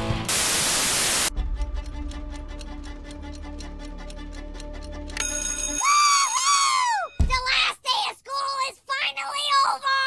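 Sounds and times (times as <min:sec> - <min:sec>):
static hiss: 0:00.3 - 0:01.3
rapid clock ticking: 0:01.4 - 0:05.9.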